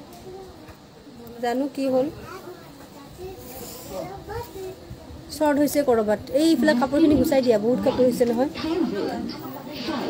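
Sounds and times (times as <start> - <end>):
quiet speech: 0.0 - 10.0.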